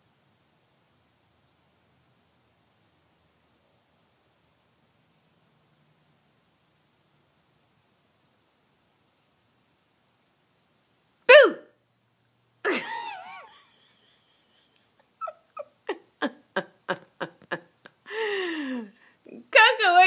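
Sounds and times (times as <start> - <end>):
person giggling: 12.7 - 19.0.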